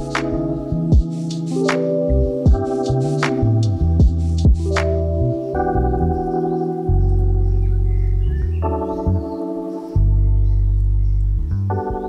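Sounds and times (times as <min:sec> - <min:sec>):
deep bass: 0:00.0 - 0:09.3, 0:10.0 - 0:12.0
slow keyboard chords: 0:00.0 - 0:12.0.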